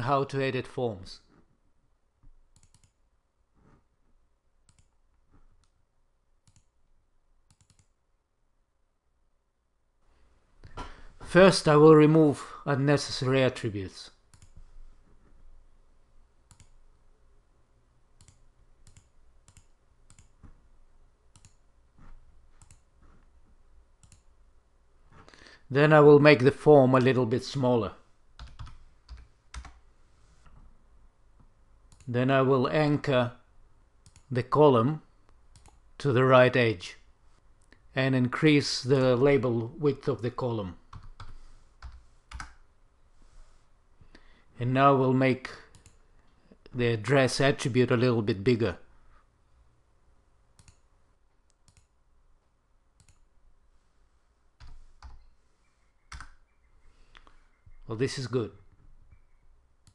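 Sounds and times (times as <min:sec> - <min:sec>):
mouse and keyboard clicks: 0:02.5 - 0:03.0, 0:04.7 - 0:04.9, 0:07.5 - 0:07.9, 0:21.3 - 0:21.6.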